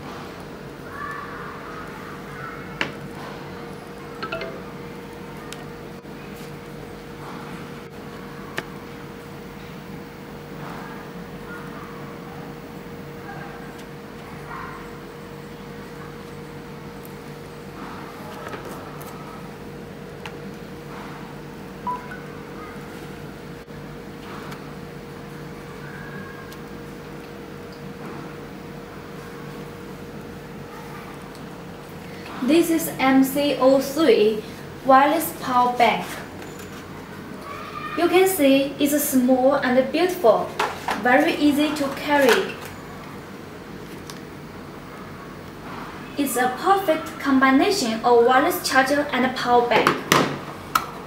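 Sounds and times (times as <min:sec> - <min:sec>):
low electrical hum: 0:00.0 - 0:51.0
short electronic chime: 0:04.2 - 0:04.9
long faint tone: 0:04.2 - 0:05.1.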